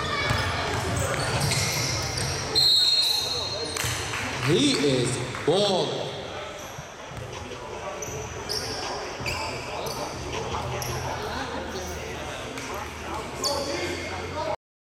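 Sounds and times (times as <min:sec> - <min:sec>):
basketball bouncing on wooden court: 0:00.1 - 0:02.3.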